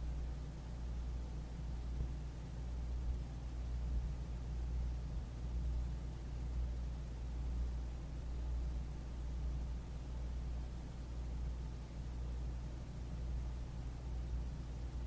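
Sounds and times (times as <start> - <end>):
low hum with faint hiss: 0.0 - 15.0.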